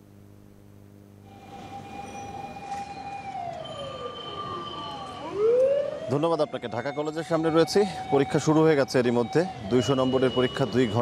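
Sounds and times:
siren wailing: 0:01.3 - 0:11.0.

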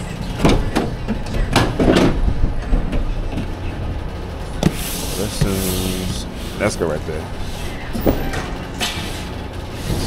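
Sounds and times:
boxes knocking and bumping: 0:00.4 - 0:03.5.

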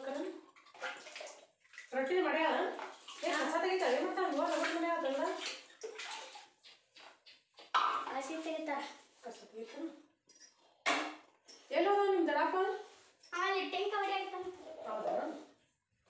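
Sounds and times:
person talking: 0:13.4 - 0:15.4.

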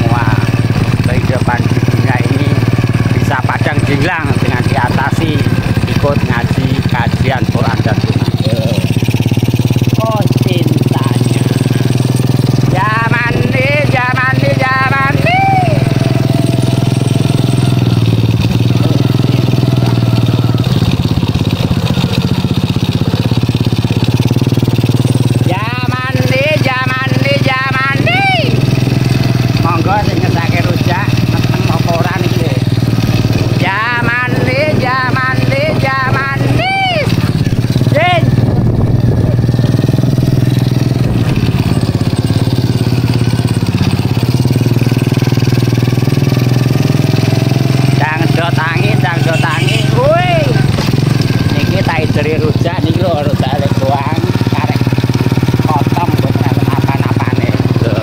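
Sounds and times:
man's voice: 0:00.0 - 0:08.9, 0:09.9 - 0:16.0, 0:25.4 - 0:28.6, 0:29.6 - 0:32.7, 0:33.4 - 0:39.4, 0:48.0 - 0:50.8, 0:51.5 - 0:54.8
small motorcycle engine running: 0:00.0 - 0:58.0.

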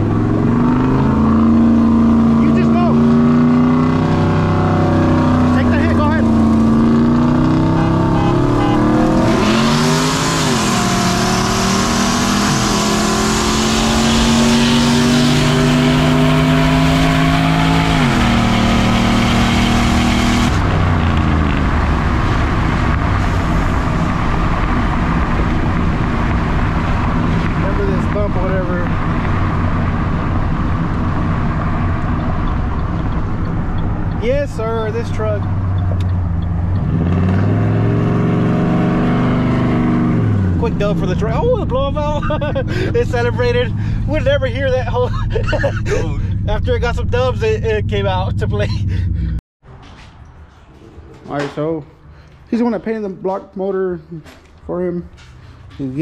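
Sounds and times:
truck engine at full throttle: 0:00.0 - 0:49.4
road noise: 0:00.0 - 0:56.0.

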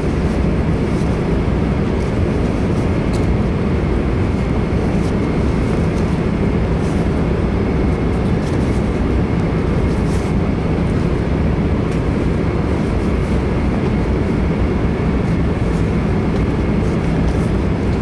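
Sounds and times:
airliner cabin roar: 0:00.0 - 0:18.0.

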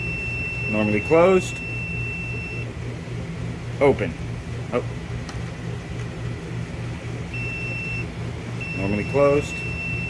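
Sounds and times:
pulsing machine hum: 0:00.0 - 0:10.0.

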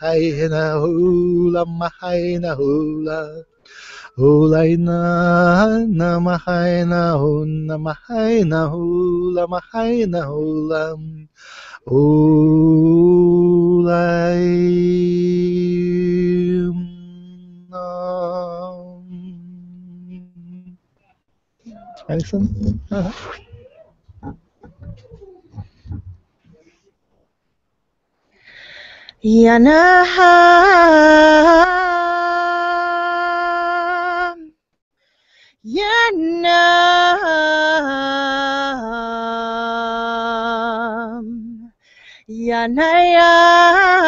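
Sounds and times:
soft wordless vocal gliding down: 0:21.7 - 0:26.8
microphone handling bumps and rustles: 0:21.7 - 0:26.9
man chanting low note: 0:22.1 - 0:23.5.

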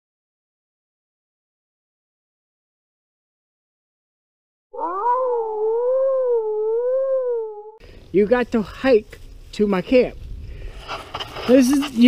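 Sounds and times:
wolf howling: 0:04.8 - 0:07.8.

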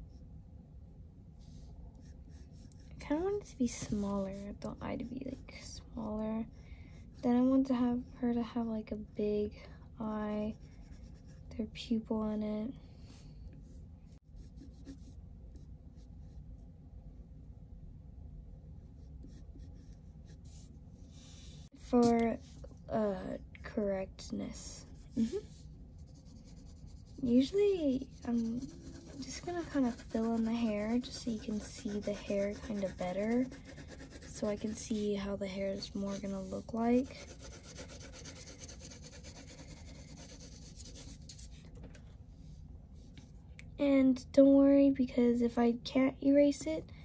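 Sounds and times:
low steady hum: 0:00.0 - 0:47.0
colored pencil scratching on paper: 0:01.5 - 0:09.4, 0:10.0 - 0:11.6, 0:13.1 - 0:16.4, 0:18.8 - 0:22.4, 0:24.6 - 0:41.6.

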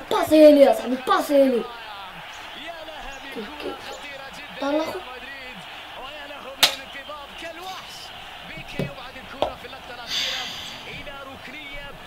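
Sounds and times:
louder talk: 0:00.0 - 0:12.0.

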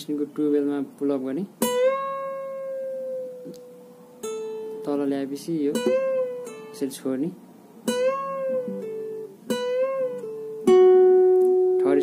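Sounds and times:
acoustic guitar note with string bend: 0:07.9 - 0:12.0.

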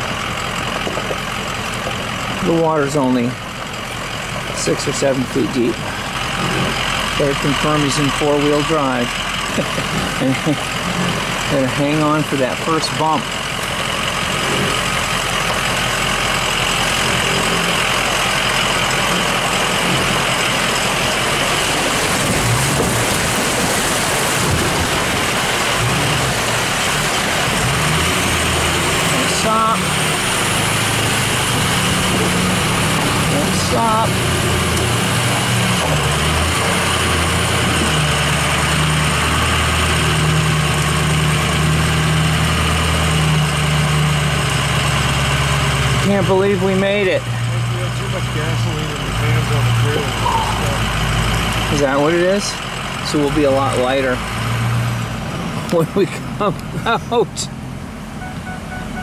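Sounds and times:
truck engine droning: 0:00.0 - 0:59.0
water rushing and splashing: 0:00.0 - 0:59.0.

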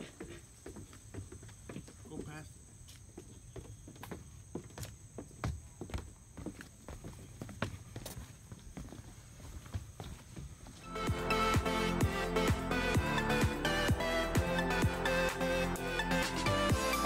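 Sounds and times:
footsteps on wooden stairs: 0:00.0 - 0:10.9.

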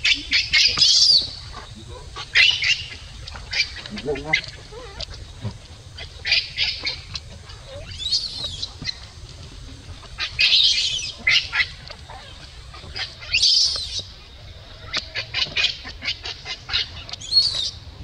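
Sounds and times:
baby monkey screaming: 0:00.0 - 0:05.2.

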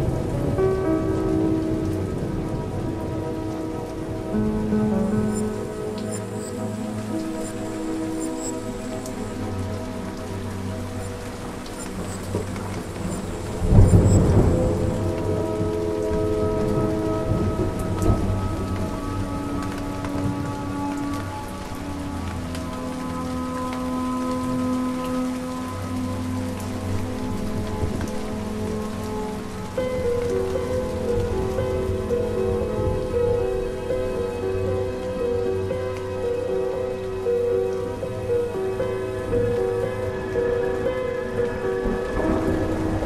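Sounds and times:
thunder rumbling: 0:00.0 - 0:23.2, 0:26.7 - 0:35.4, 0:37.9 - 0:43.0
ambient music held notes: 0:00.0 - 0:43.0
steady rain: 0:00.0 - 0:43.0.

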